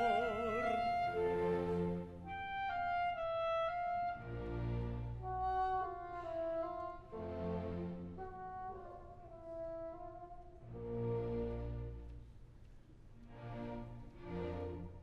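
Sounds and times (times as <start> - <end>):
wind instruments melody: 0.0 - 12.3
low orchestral chords: 0.0 - 15.0.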